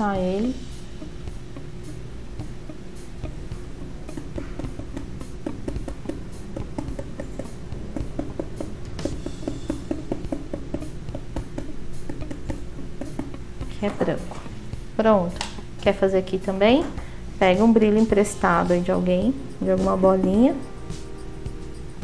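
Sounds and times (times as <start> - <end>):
background music: 0.0 - 22.0
paintbrush tapping through stencil: 2.7 - 13.8.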